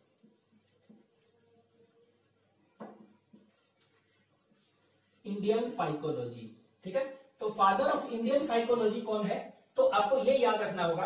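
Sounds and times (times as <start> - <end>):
marker scratching on whiteboard: 0.0 - 11.0.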